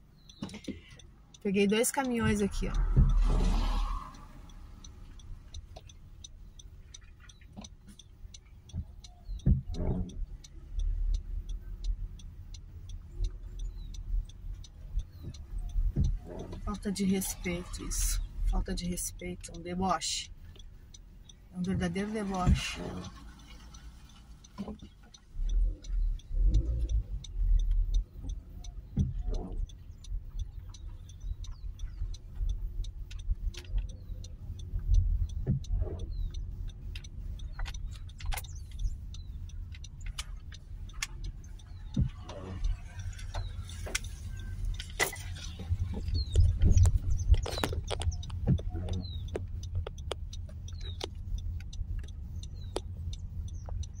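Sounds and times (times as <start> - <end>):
engine and tyres rumbling: 0.0 - 54.0
light ticks and taps: 0.0 - 54.0
low thumps: 1.7 - 4.5, 8.7 - 12.2.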